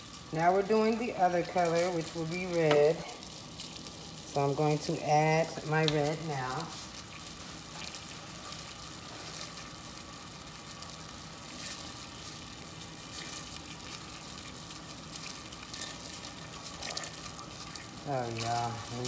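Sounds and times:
candy mixture bubbling and sizzling: 0:00.0 - 0:19.0.

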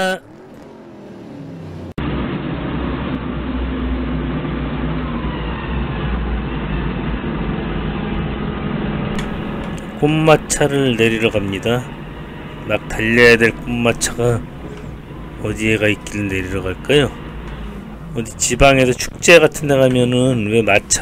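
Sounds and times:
forklift engine droning: 0:00.0 - 0:21.0.

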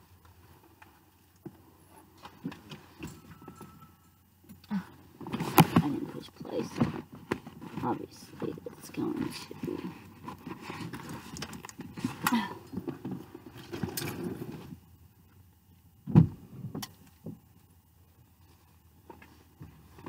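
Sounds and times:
clothing rustling against car seat: 0:05.1 - 0:14.9
loud thump: 0:16.1 - 0:16.4.

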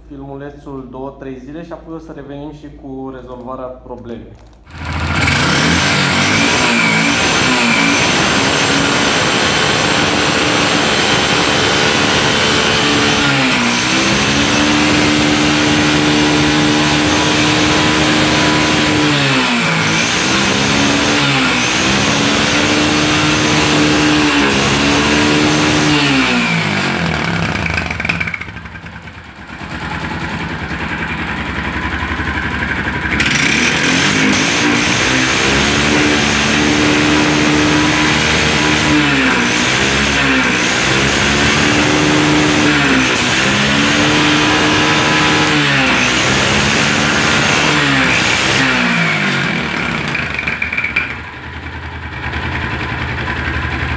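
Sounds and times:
single-cylinder engine revving: 0:04.7 - 0:53.9.

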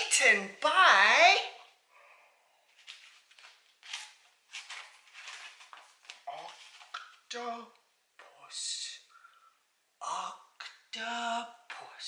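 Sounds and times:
soft rustling and handling noises: 0:02.5 - 0:07.5.

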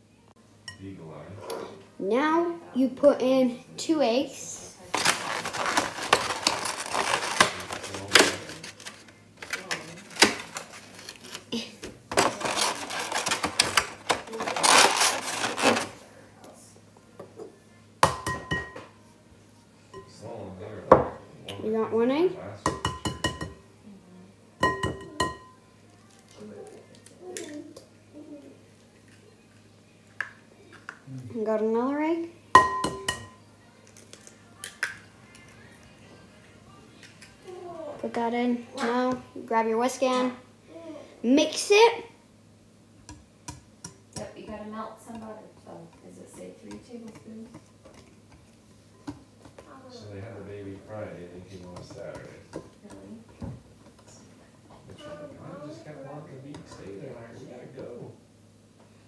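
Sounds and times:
loud rustling: 0:04.9 - 0:11.5, 0:12.2 - 0:16.0.

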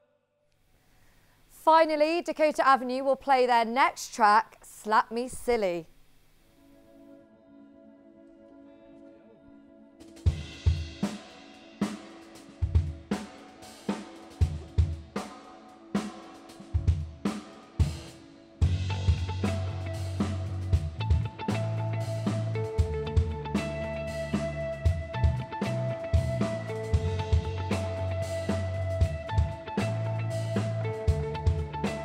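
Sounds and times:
electric guitar: 0:06.8 - 0:32.0
drum kit playing: 0:10.0 - 0:32.0
bass guitar: 0:18.6 - 0:32.0.

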